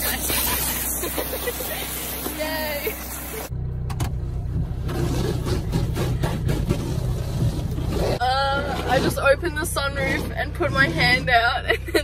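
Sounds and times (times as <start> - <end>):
hose spraying water on car: 0.0 - 3.5
car engine running: 0.0 - 12.0.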